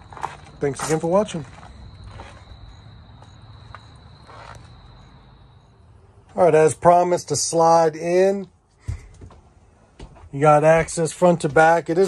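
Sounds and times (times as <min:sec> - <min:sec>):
faint scuffs of movement: 0:00.0 - 0:02.5, 0:03.7 - 0:04.7
crickets trilling: 0:00.0 - 0:08.4.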